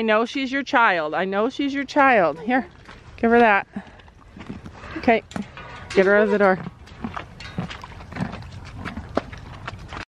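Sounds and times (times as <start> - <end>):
horse moving knocks and rustles: 1.8 - 10.0.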